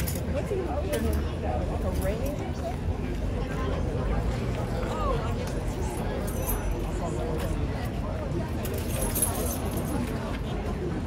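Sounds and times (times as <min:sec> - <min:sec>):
low traffic rumble: 0:00.0 - 0:11.0
murmur of voices: 0:00.0 - 0:11.0
bridle chains jingling: 0:05.9 - 0:07.0, 0:08.6 - 0:10.1.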